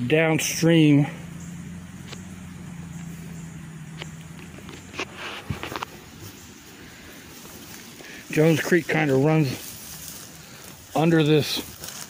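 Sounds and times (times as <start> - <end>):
footsteps through dry leaves: 4.2 - 12.0.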